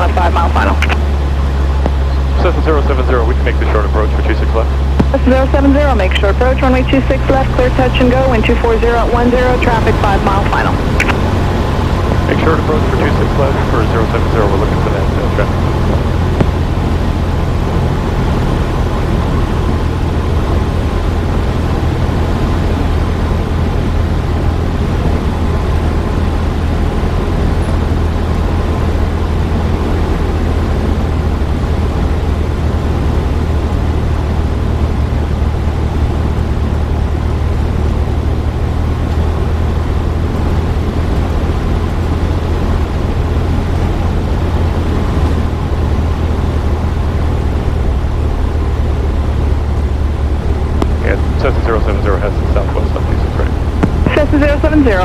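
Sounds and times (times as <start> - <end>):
aircraft engine drone: 0.0 - 55.0.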